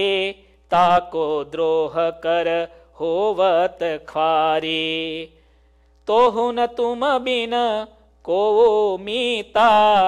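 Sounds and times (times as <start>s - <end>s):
man chanting devotional verse: 0.0s - 5.4s, 6.0s - 10.0s.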